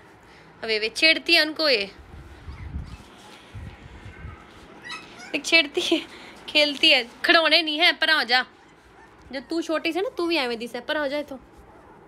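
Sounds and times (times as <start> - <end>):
puppies whimpering: 2.2 - 5.8, 8.4 - 10.4.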